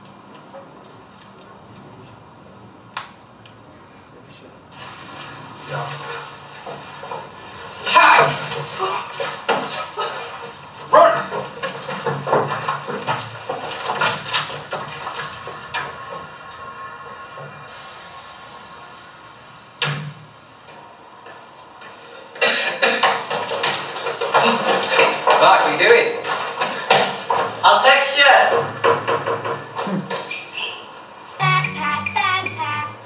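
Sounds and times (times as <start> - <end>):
knocks and scuffling: 4.8 - 16.7, 20.6 - 32.4.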